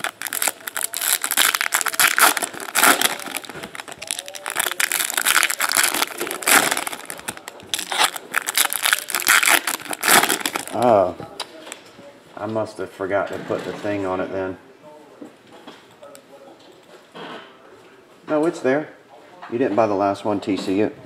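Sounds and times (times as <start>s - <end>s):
foil wrappers crinkling: 0.0s - 11.8s.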